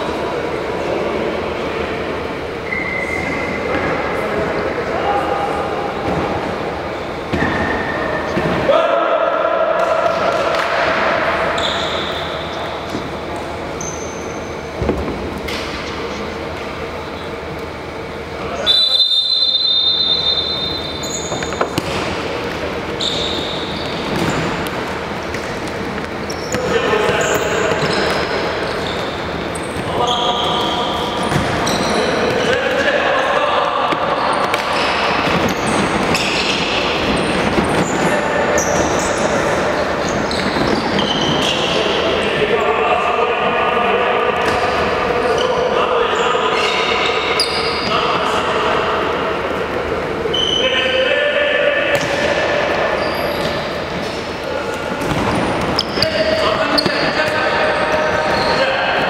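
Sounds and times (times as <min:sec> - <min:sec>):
referee's whistle blast: 0:18.6 - 0:21.3.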